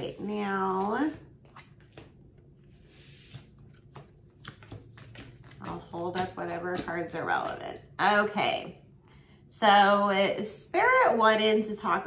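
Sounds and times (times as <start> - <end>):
cards rustling: 0.8 - 6.9.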